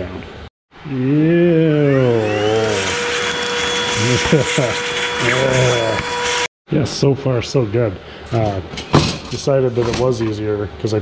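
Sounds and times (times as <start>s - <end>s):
electric drill drilling metal: 1.9s - 6.5s.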